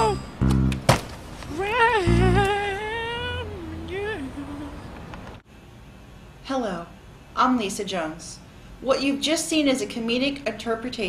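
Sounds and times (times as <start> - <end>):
person humming a wavering note: 0.0 - 0.9, 1.5 - 4.7
low note: 0.0 - 1.0, 2.0 - 2.8.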